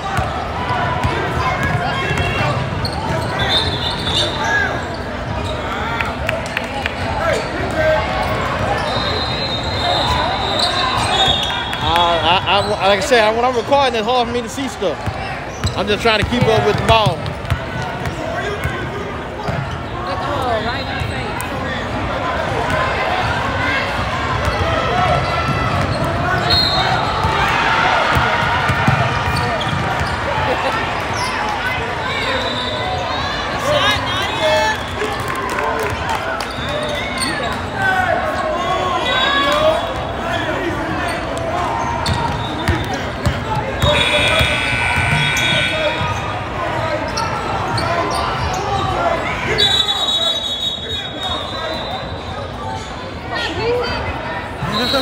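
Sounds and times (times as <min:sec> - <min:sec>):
echoing shouts and chatter: 0:00.0 - 0:55.0.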